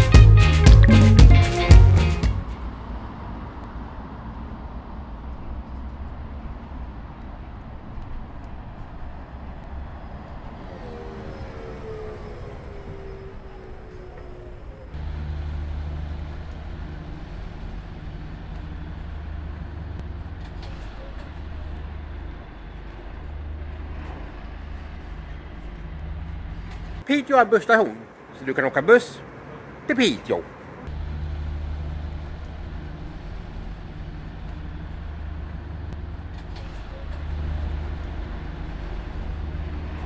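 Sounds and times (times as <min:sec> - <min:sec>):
bus engines rumbling: 0:00.0 - 0:40.0.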